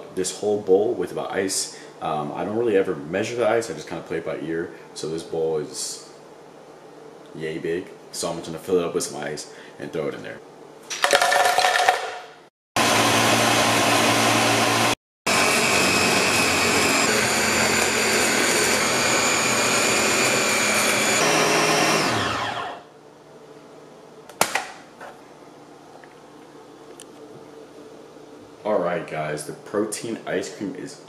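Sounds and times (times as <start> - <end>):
blender motor crushing ice: 10.9 - 12.2, 12.8 - 22.8.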